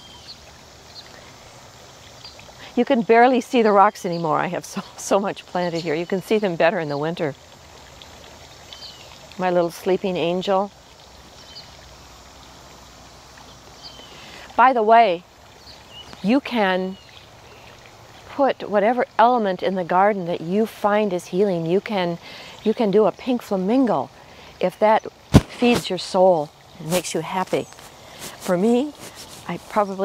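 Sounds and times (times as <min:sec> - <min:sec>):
outdoor background noise: 0:00.0 - 0:30.0
water fountain trickling: 0:00.0 - 0:30.0.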